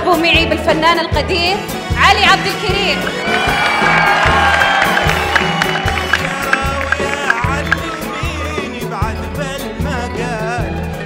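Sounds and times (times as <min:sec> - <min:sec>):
crowd cheering: 0:02.2 - 0:08.6.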